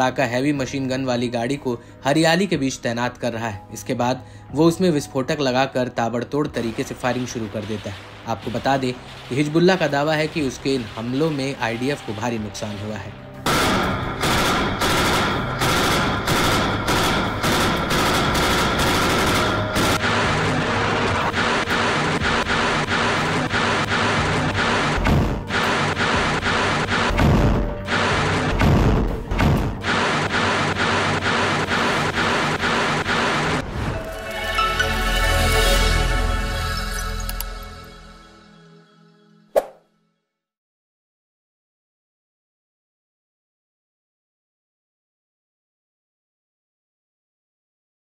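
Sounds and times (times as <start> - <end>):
background music: 0.0 - 40.2
heavy machine gun firing: 6.8 - 11.9, 12.6 - 33.6
sharp mouse-click sound effect: 39.6 - 39.8.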